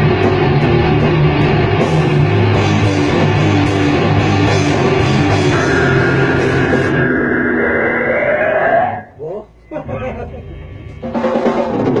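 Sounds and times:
heavy metal band playing: 0.0 - 9.1
loud distorted guitar: 0.0 - 9.2.

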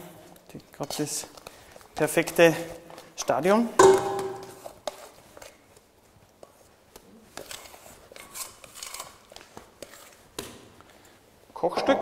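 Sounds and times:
knock on metal bowl: 3.8 - 4.6.

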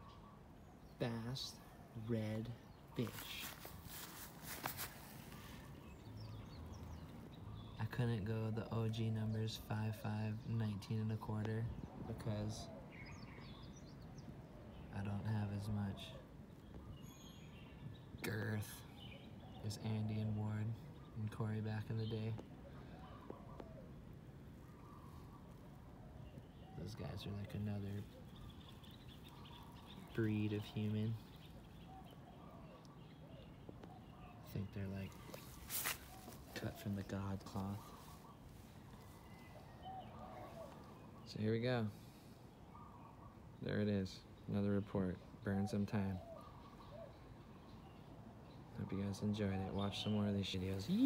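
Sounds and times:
faint bird chirps: 0.0 - 51.0
brief rustles: 3.0 - 5.7, 35.2 - 36.6.

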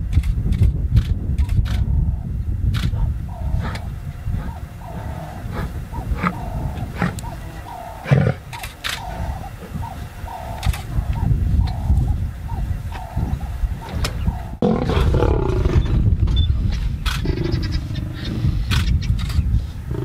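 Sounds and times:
low rumble: 0.0 - 20.0.

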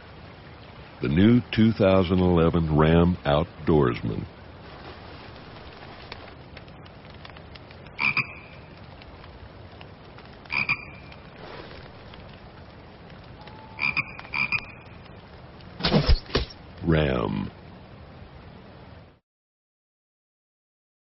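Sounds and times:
background hiss: 0.0 - 19.2
frog croaking: 7.9 - 8.8, 10.5 - 11.6, 13.4 - 15.0.

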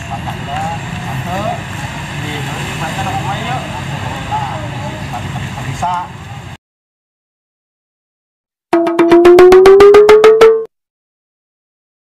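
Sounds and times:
pulsing rising comedy tone: 8.8 - 10.7.

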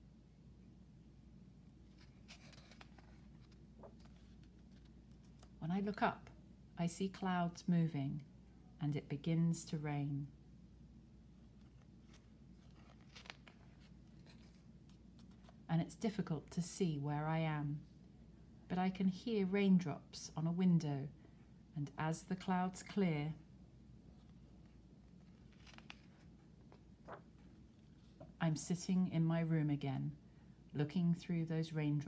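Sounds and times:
book page turning: 1.8 - 5.6, 11.4 - 15.6, 24.2 - 28.3
paper rustling: 1.8 - 5.6, 11.4 - 15.6, 24.2 - 28.3.

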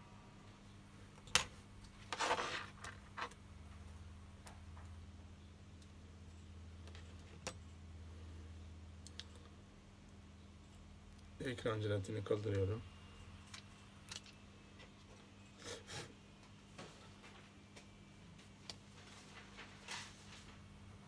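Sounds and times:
low steady hum: 0.0 - 21.0.

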